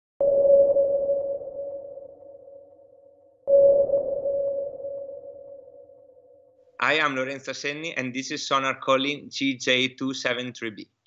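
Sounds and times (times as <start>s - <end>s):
synthesized ping tones: 3.5s - 5.9s.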